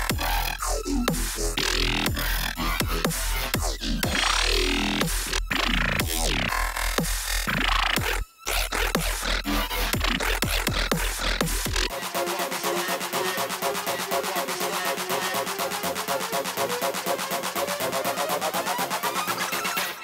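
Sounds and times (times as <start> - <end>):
dubstep pattern with deep bass: 0.0 - 20.0.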